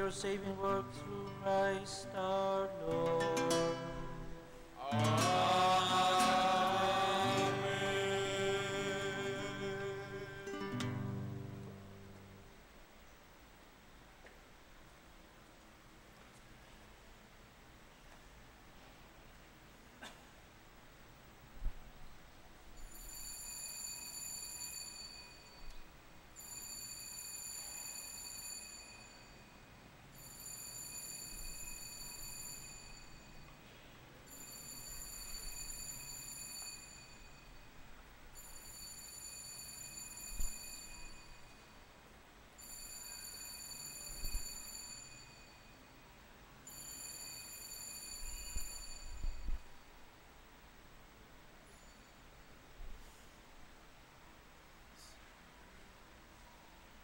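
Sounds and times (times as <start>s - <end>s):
altar bells ringing: 22.9s - 25.7s, 26.4s - 33.5s, 34.3s - 37.7s, 38.4s - 41.9s, 42.6s - 46.0s, 46.7s - 49.4s.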